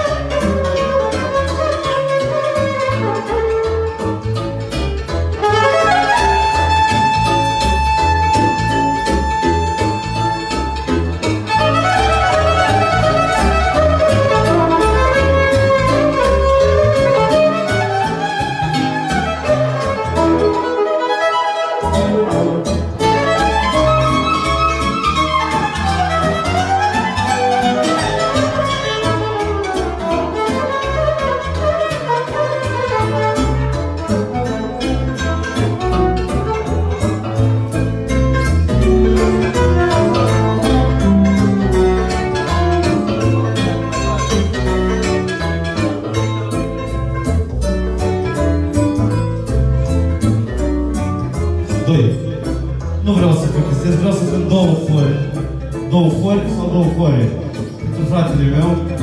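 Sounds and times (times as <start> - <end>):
live band with steady beat: 0.0 - 59.0
violin melody with sliding notes: 0.0 - 59.0.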